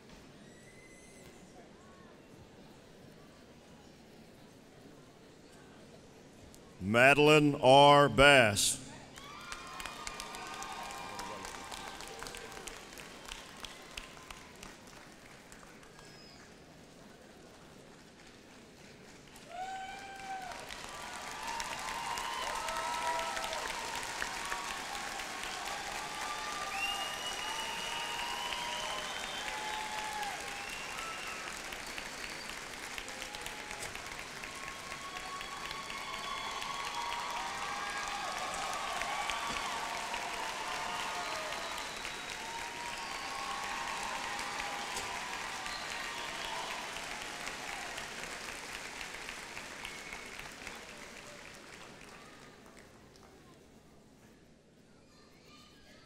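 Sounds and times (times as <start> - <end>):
audience applauding: 9.2 - 16.1, 19.2 - 52.9.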